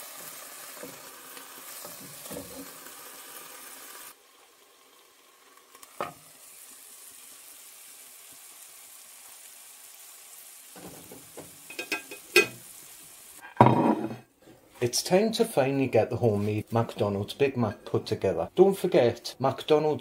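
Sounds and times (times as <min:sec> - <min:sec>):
patties sizzling in a frying pan: 0:00.0 - 0:13.7.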